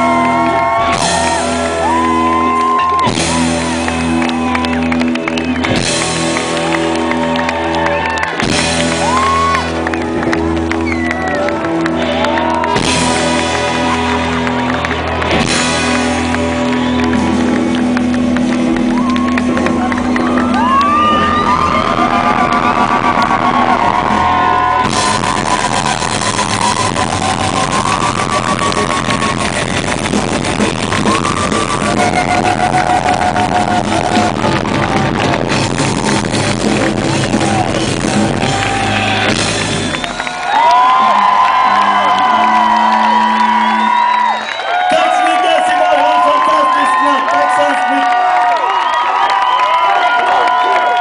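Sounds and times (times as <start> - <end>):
rock band playing live: 0.0 - 51.0.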